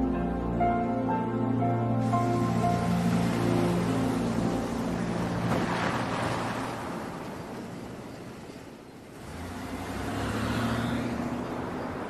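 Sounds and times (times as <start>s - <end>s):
car engine humming: 1.9s - 12.0s.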